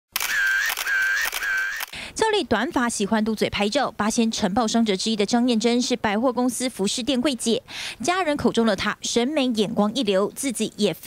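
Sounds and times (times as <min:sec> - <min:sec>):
camera shutter sound effects: 0:00.1 - 0:02.0.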